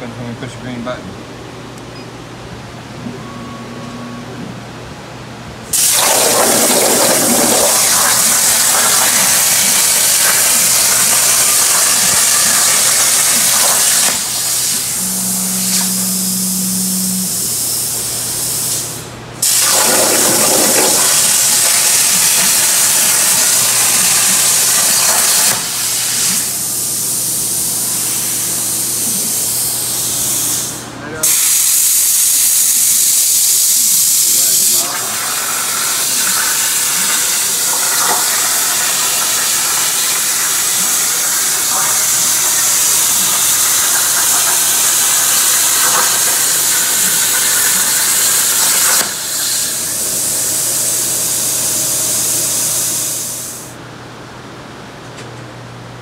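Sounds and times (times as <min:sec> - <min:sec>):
plasma torch hissing: 0:05.7 - 0:16.4, 0:17.1 - 0:53.7.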